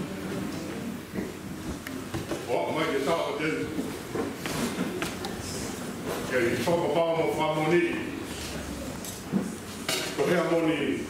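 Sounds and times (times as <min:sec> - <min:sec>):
man speaking: 0:02.5 - 0:03.8, 0:06.2 - 0:08.2, 0:10.2 - 0:11.0.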